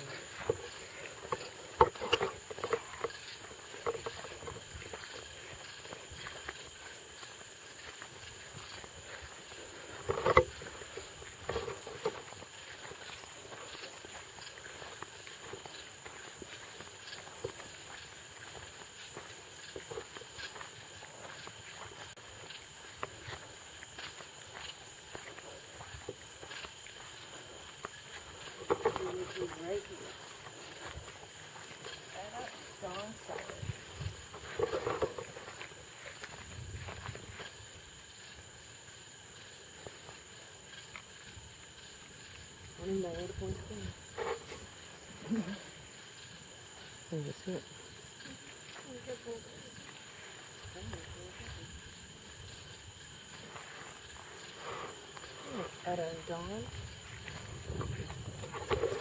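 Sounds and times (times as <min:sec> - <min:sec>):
footsteps on grass: 0:00.0 - 0:59.0.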